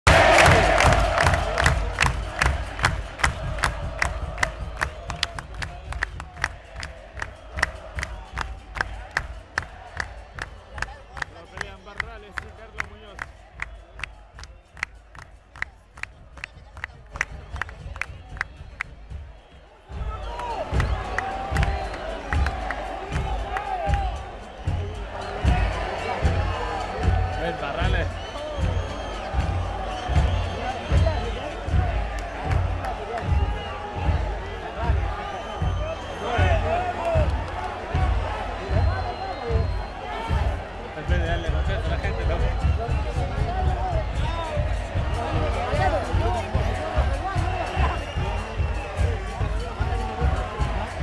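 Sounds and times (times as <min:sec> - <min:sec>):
stadium crowd roaring: 0:00.1 - 0:51.0
steady beat from stands: 0:00.1 - 0:51.0.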